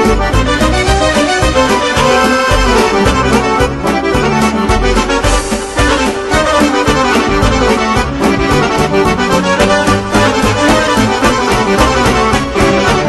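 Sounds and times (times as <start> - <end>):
accordion melody: 0.0 - 13.0.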